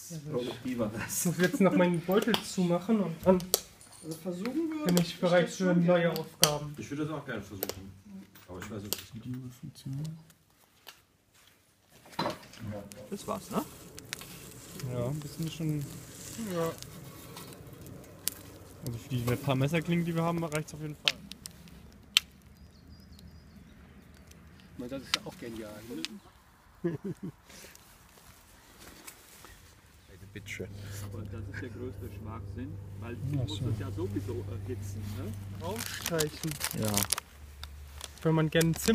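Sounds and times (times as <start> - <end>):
people talking: 30.1 - 37.1
person speaking: 30.1 - 37.2
paper crinkling: 35.6 - 38.9.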